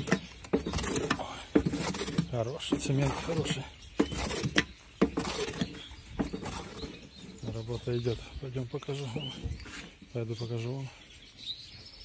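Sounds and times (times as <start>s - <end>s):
hoe knocking against tub: 0.0s - 6.7s
hoe mixing wet mortar: 0.0s - 8.3s.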